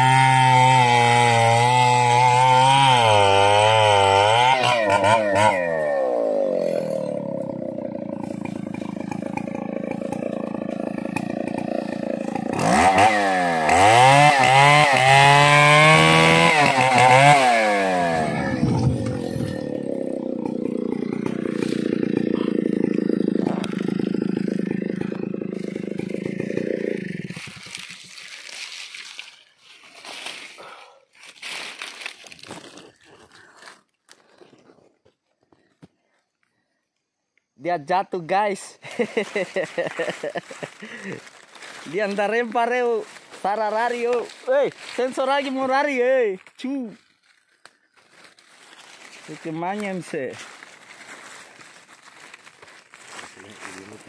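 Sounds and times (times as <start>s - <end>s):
chainsaw cutting log: 0.0s - 29.4s, 38.9s - 45.9s
faint snaps and rustles: 46.4s - 49.3s.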